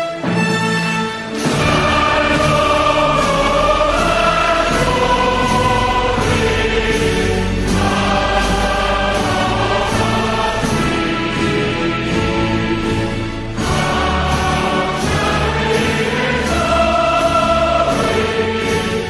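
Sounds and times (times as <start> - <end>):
choir singing sustained notes: 0.0 - 19.0.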